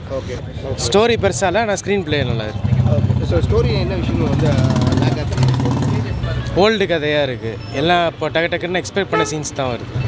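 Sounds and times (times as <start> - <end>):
man speaking: 6.6 - 9.8.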